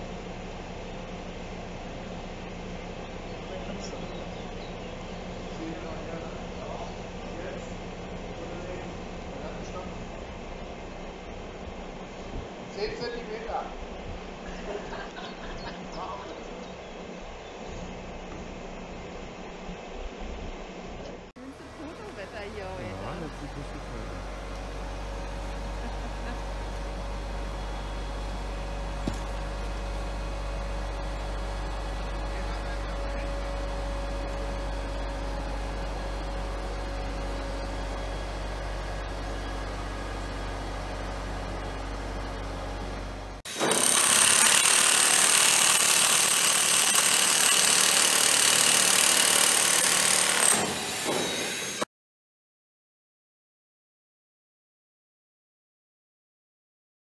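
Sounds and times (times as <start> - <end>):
crane engine humming: 21.4 - 50.6.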